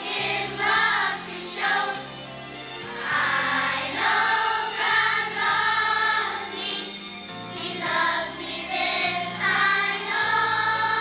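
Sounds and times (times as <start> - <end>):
children's choir singing: 0.0 - 2.2, 2.9 - 11.0
instrumental accompaniment with bass: 0.0 - 11.0.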